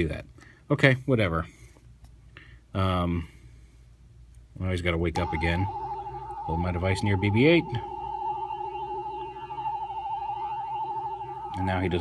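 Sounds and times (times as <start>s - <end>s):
electronic tone with fast warble: 5.2s - 12.0s
lower warbling tone: 5.2s - 12.0s.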